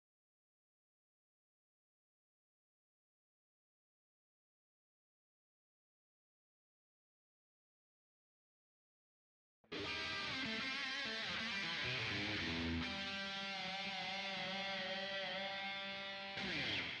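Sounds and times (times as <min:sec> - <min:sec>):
electric guitar ringing chords: 0:09.7 - 0:17.0.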